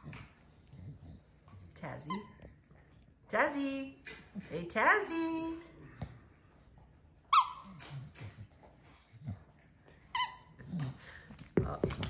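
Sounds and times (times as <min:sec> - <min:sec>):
dog's squeaky toy squeaking: 0:07.3 - 0:07.8.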